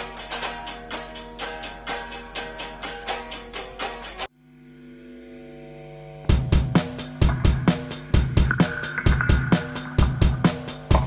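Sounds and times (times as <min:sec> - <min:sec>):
electric guitar strumming: 0:00.0 - 0:04.3, 0:05.3 - 0:11.0
heavy low beat: 0:06.3 - 0:11.0.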